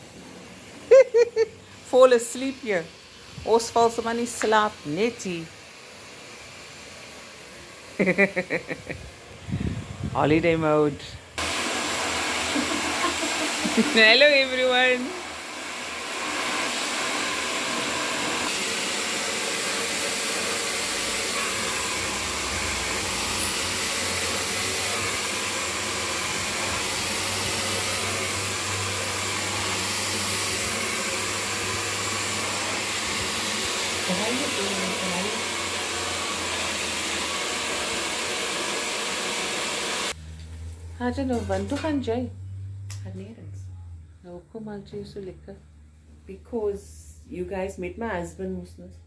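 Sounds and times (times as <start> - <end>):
hair dryer running: 0.0 - 40.8.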